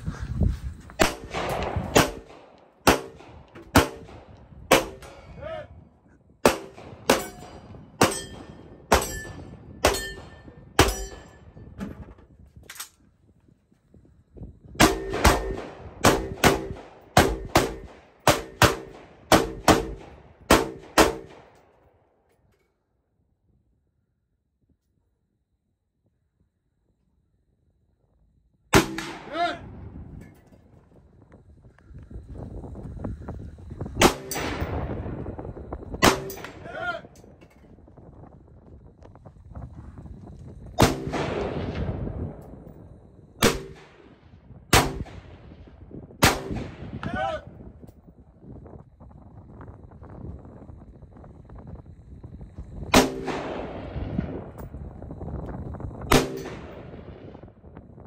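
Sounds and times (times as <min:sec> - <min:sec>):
rifle shots echoing: 0:01.0 - 0:05.4, 0:06.4 - 0:11.3, 0:14.8 - 0:21.6, 0:28.7 - 0:29.6, 0:34.0 - 0:34.8, 0:36.0 - 0:37.0, 0:40.8 - 0:42.0, 0:43.4 - 0:45.6, 0:46.2 - 0:47.1, 0:52.9 - 0:54.0, 0:56.1 - 0:57.0
steel target ringing: 0:07.1 - 0:11.5.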